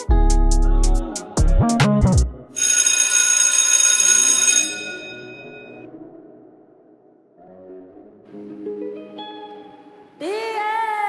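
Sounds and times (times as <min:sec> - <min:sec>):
high-pitched bell ringing: 0:02.6 - 0:05.8.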